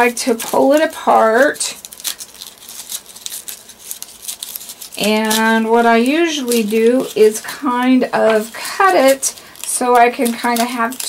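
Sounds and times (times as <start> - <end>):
stiff paper crinkling: 0.0 - 11.0.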